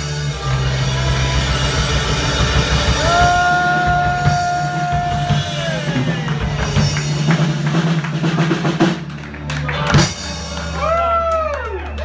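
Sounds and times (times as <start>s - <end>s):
live band playing: 0.0s - 12.0s
fast run of drum hits: 0.4s - 9.1s.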